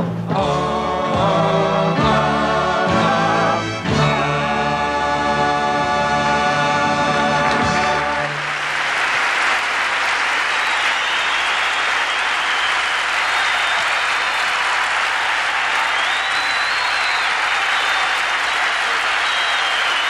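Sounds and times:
audience applauding: 7.6 - 20.0.

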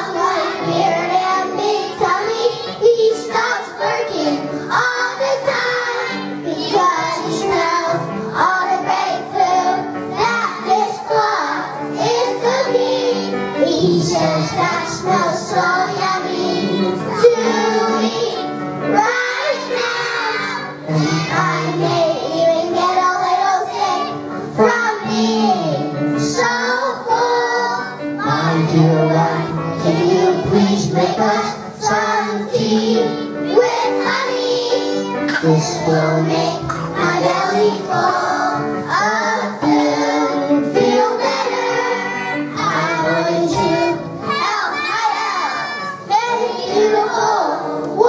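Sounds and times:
children's choir singing: 0.0 - 48.0
instrumental accompaniment: 0.0 - 48.0.

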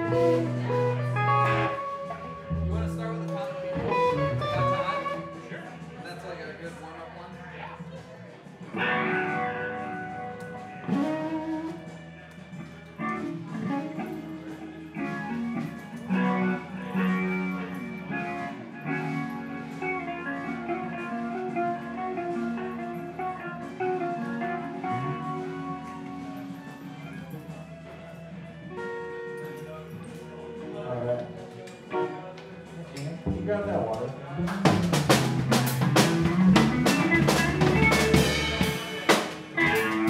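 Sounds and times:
bass guitar sliding notes: 0.0 - 5.5, 23.2 - 26.3, 34.4 - 40.0
electric guitars through amplifiers: 0.0 - 6.0, 8.7 - 40.0.

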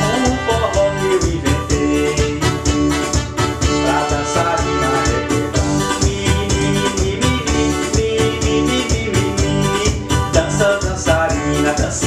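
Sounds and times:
electronic keyboard melody: 0.0 - 12.0
steady drum beat: 0.0 - 12.0.

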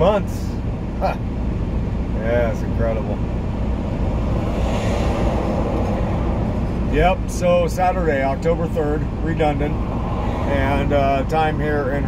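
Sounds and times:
truck driving past: 2.5 - 11.6.

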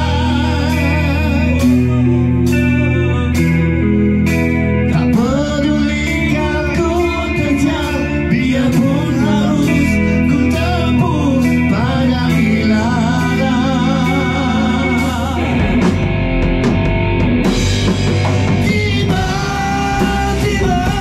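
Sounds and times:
bass guitar: 0.0 - 21.0
drum kit: 0.0 - 21.0
electric guitars: 0.0 - 21.0
voices singing together: 5.2 - 15.8, 18.5 - 21.0.

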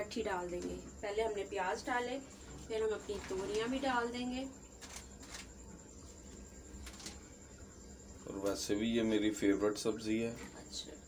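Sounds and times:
low steady hum: 0.0 - 11.0
soft rustle: 2.4 - 3.8.

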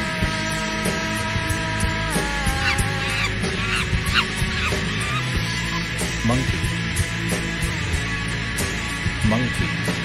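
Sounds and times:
rock music with guitar and drums: 0.0 - 10.0
monkey screeching: 2.2 - 6.8.

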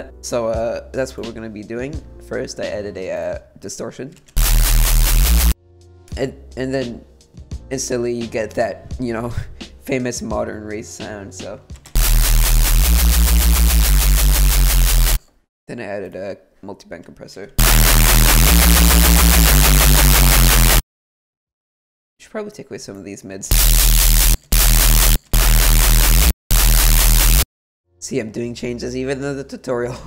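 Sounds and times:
gritty pulsing synth bass: 4.4 - 5.6, 12.0 - 15.2, 17.6 - 20.8, 23.5 - 27.4.

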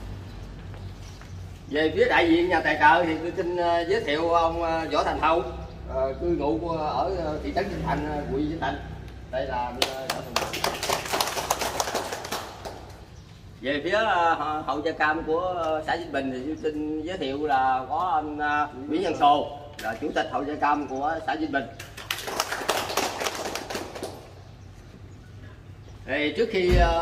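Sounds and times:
people clapping: 9.7 - 13.1, 21.8 - 24.4.

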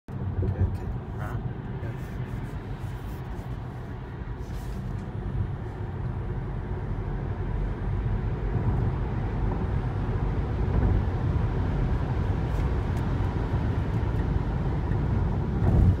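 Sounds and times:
car road and wind noise: 0.1 - 16.0.

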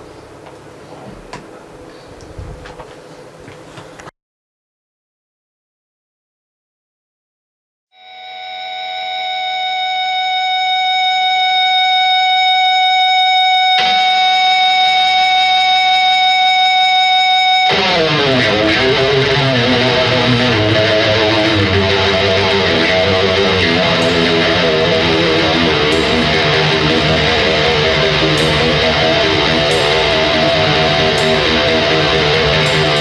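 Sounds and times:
sustained electric guitar tone: 8.0 - 33.0
rock band playing loud riff: 13.7 - 16.2, 17.5 - 33.0.

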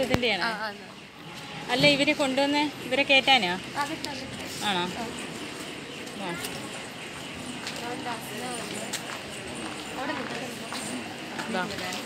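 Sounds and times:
children and adults chattering: 0.0 - 12.0.

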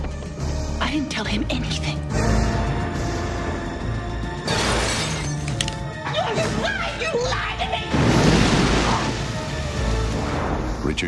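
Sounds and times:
tense orchestral trailer music: 0.0 - 11.0
glass shattering: 4.5 - 5.8.

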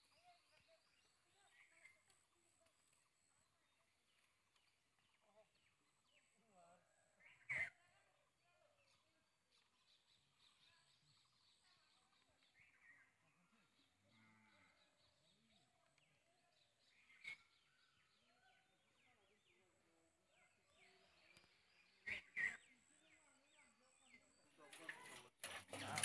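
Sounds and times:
faint bird chirps: 0.0 - 26.0.

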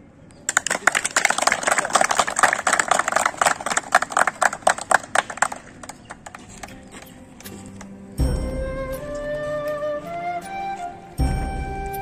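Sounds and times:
people applauding: 0.5 - 6.7.

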